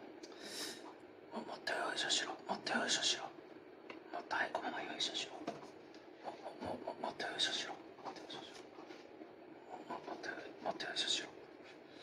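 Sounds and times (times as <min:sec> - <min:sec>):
person speaking quietly: 0:01.3 - 0:03.4, 0:04.0 - 0:08.8, 0:09.6 - 0:11.5.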